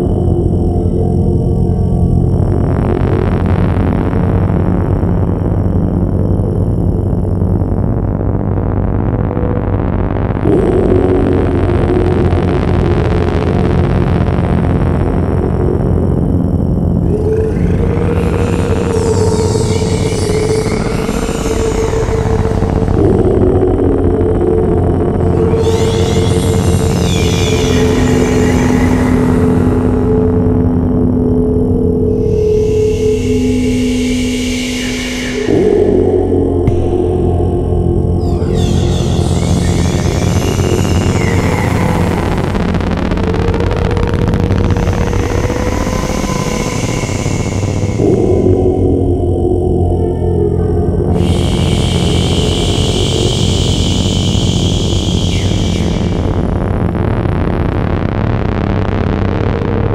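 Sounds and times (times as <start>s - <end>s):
gongs and singing bowls drone: 9.1s - 57.4s.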